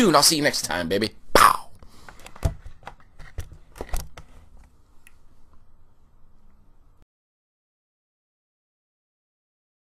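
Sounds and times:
microphone handling clicks and knocks: 2.1s - 4.4s.

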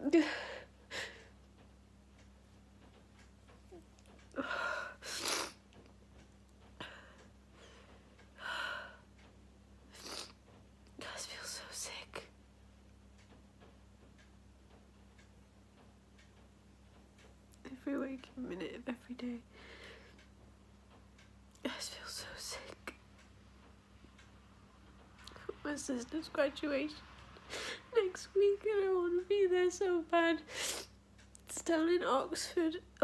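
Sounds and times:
woman sobbing: 0.0s - 1.3s.

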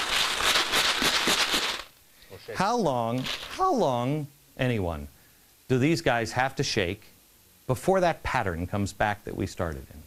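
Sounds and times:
hard candies rattling in jars: 0.0s - 1.9s.

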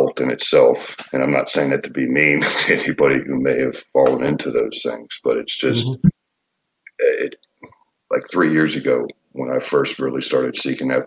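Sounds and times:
person speaking over video call: 0.0s - 6.1s, 6.9s - 11.0s.

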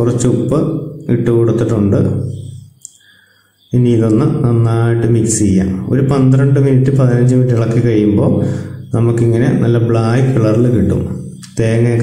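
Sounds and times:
man chanting: 0.0s - 2.6s, 3.6s - 12.0s.

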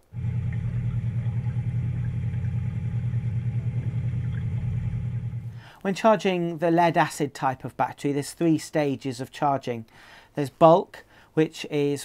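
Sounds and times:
pulsing engine hum: 0.0s - 5.7s.

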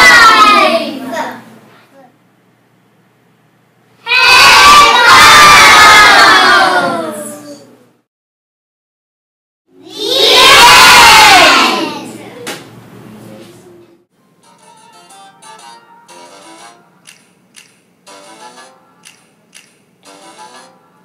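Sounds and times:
children shouting together: 0.0s - 1.2s, 4.1s - 7.6s, 9.8s - 12.2s.

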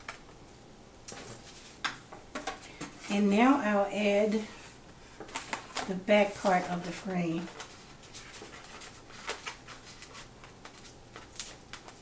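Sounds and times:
paper rustling: 4.6s - 12.0s.

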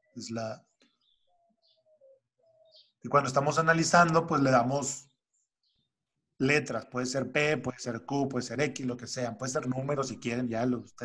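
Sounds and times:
faint bird calls: 0.0s - 3.6s.

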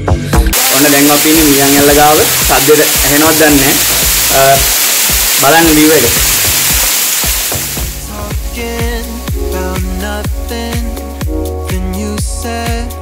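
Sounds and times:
waterfall pouring onto rock: 0.5s - 9.0s
man talking: 0.6s - 4.7s, 5.4s - 6.3s.

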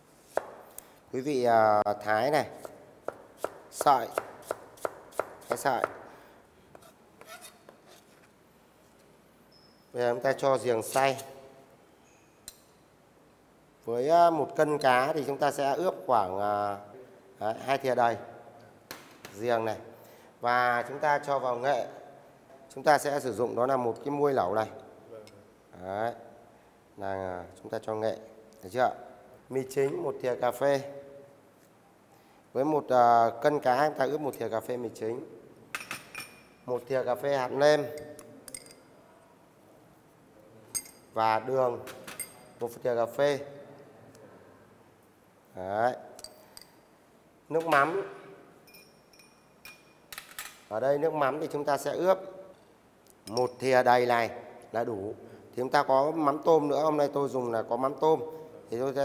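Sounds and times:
metal spoon clinking ceramic dish: 35.8s - 36.6s, 38.0s - 38.9s, 40.7s - 41.1s, 48.7s - 50.0s.

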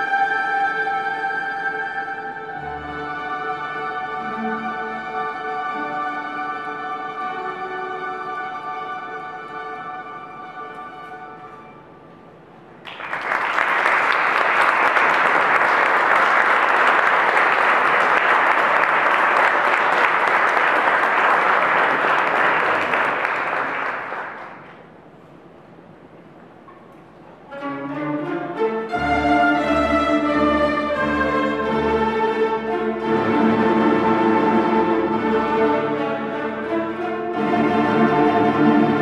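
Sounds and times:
plectrum orchestra playing: 0.0s - 12.8s, 25.0s - 39.0s
audience applauding: 12.8s - 24.8s.

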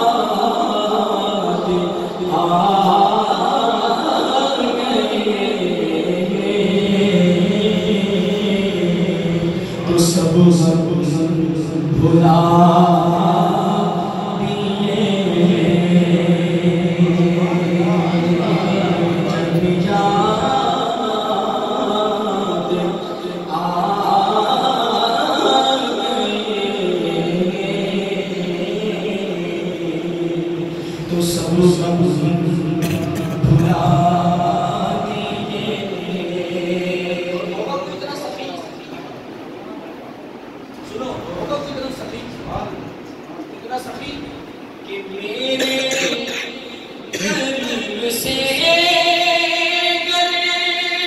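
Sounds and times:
man singing unaccompanied: 0.0s - 38.4s, 44.8s - 51.0s.

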